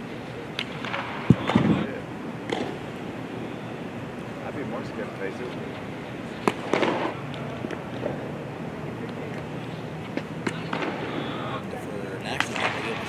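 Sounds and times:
people talking: 1.3 - 2.1, 4.4 - 5.9, 10.5 - 13.0.

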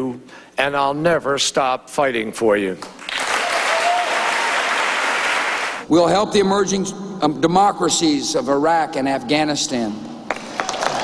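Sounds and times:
audience applauding: 3.0 - 5.8.

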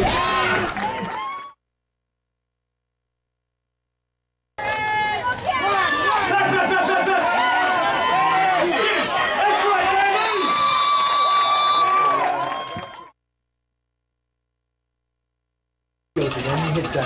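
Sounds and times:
spectators shouting and cheering: 0.0 - 1.6, 4.6 - 13.2.

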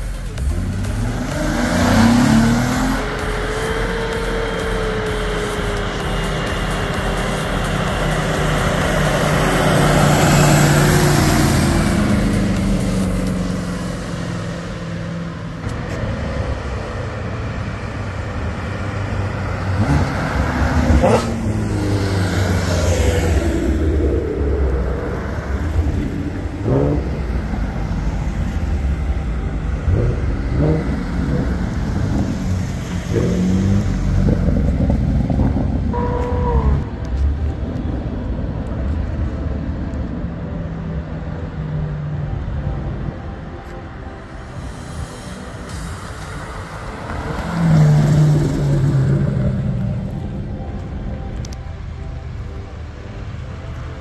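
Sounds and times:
cars driving past: 0.0 - 54.0
engine throttle revs: 0.2 - 37.6.

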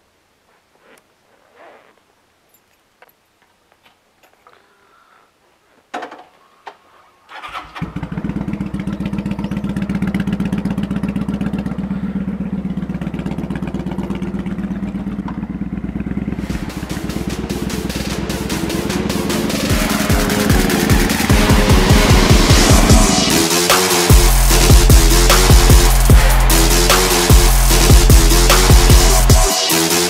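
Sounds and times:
motorcycle engine running: 7.4 - 29.5
music with a beat: 16.5 - 30.0.

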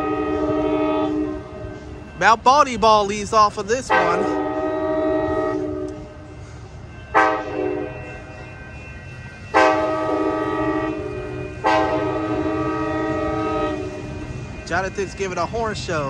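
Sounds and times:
train air horn blasts: 0.0 - 2.4, 3.8 - 15.3.

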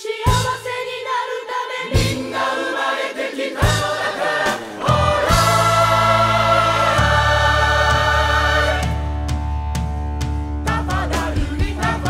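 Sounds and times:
gospel choir singing: 0.0 - 9.2, 10.6 - 12.0
keyboard and percussion backing: 3.5 - 12.0.

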